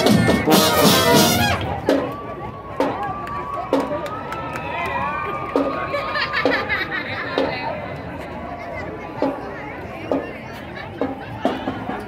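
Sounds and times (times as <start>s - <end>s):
marching drum beat: 0.0s - 2.0s
crowd chatter: 0.0s - 12.0s.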